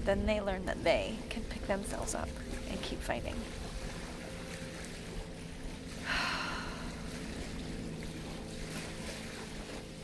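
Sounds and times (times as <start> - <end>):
faint low drone: 0.0 - 10.0
wind rumbling on microphone: 0.0 - 10.0.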